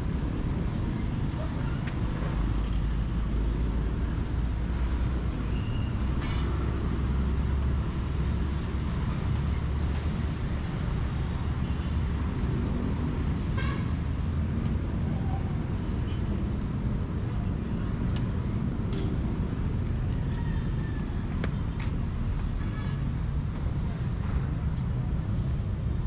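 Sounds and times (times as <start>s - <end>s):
street traffic rumble: 0.0s - 26.0s.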